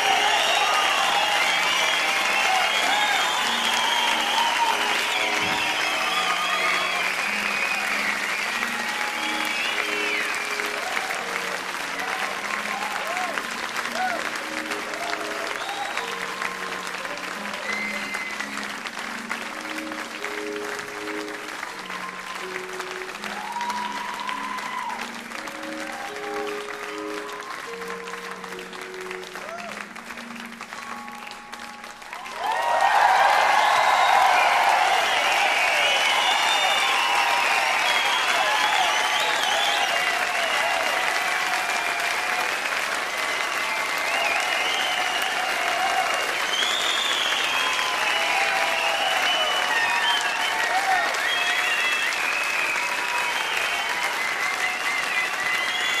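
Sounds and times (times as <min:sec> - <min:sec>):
audience applause and cheering: 0:00.0 - 0:56.0.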